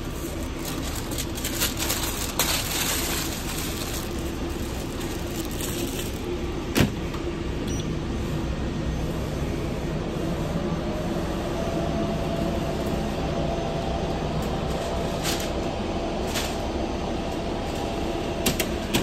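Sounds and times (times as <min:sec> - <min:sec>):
kitchen equipment humming: 0:00.0 - 0:08.7.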